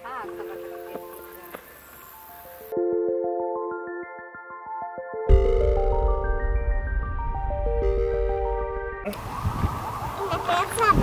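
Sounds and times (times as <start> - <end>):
wind rumbling on microphone: 5.9 - 11.0.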